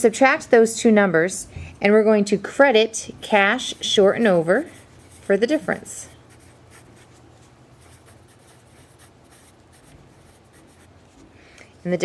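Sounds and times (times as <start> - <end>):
low steady background hum: 0.0 - 12.0
pen strokes on paper: 3.6 - 11.3.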